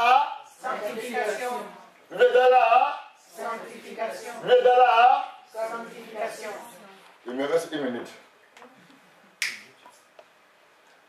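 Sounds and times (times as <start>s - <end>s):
sharp snap: 9.4s - 9.7s.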